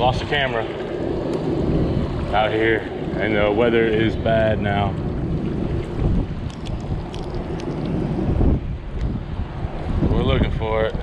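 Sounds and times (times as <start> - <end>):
choppy water sloshing and splashing: 0.0 - 11.0
wind blowing on microphone: 0.0 - 11.0.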